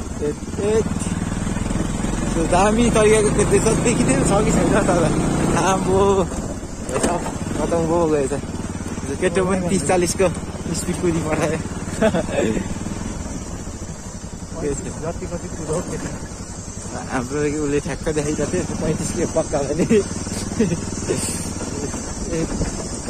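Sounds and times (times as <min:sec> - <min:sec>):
motorcycle engine running: 0:00.0 - 0:23.0.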